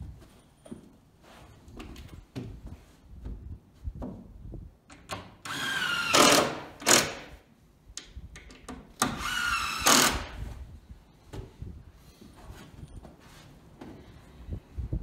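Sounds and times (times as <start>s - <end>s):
cordless drill whining: 5.4s - 7.2s, 9.0s - 10.4s
handling knocks and clicks: 7.9s - 9.0s.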